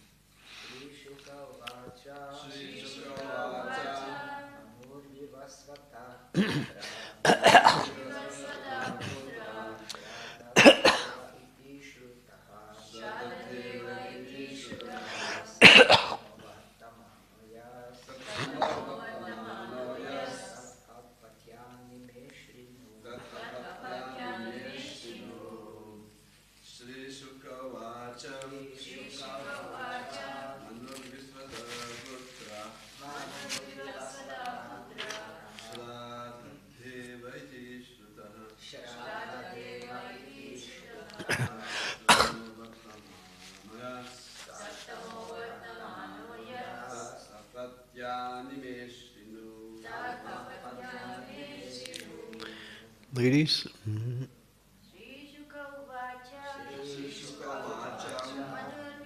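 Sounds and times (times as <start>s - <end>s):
person coughing: 6.4s - 7.9s, 10.6s - 11.2s, 15.6s - 16.2s, 41.2s - 42.4s.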